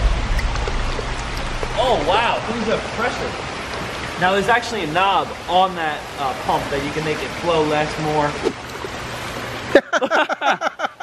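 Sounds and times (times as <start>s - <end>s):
water splashing into a pond: 0.0s - 9.7s
steady low hum: 0.0s - 10.0s.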